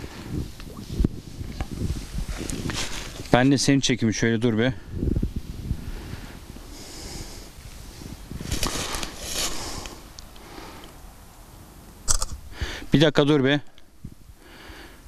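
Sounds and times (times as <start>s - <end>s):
sniffing and exhaling: 8.5s - 11.0s.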